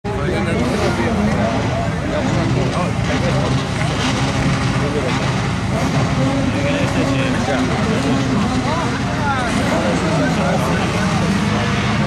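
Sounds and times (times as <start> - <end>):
car engines idling and revving: 0.0 - 12.0
voices: 0.0 - 12.0.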